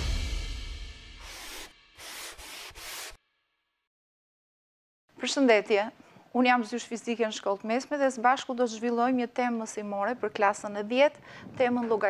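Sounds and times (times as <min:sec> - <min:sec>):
sponge rubbing chalkboard: 0:01.2 - 0:03.2.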